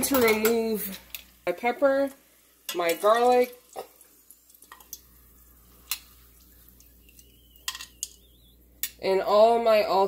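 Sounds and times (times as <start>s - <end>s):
faint frying oil hiss: 0.0s - 10.0s.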